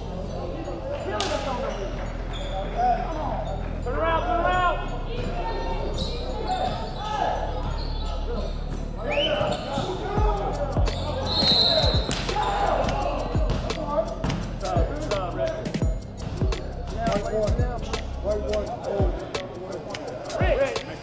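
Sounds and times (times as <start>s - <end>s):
sneakers squeaking on floor: 1.2s - 3.8s, 5.2s - 10.2s, 10.8s - 14.5s.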